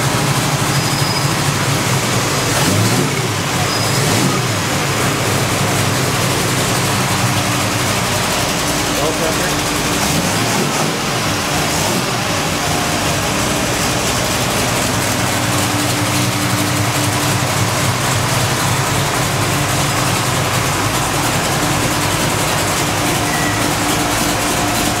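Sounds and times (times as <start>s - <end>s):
car engine idling: 0.0s - 25.0s.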